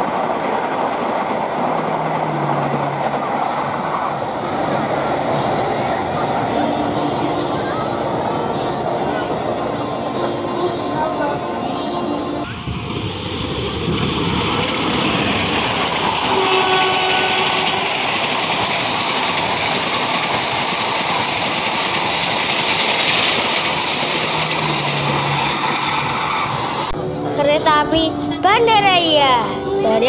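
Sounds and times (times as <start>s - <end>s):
train passing at speed: 0.0s - 30.0s.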